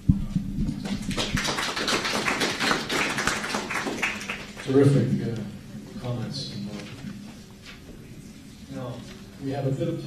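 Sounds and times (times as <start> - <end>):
crowd applause: 0.8 - 4.7.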